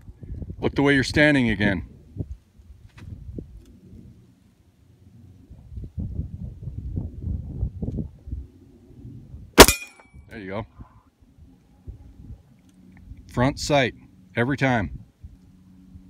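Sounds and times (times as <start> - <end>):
pistol shot: 9.6 - 10.0.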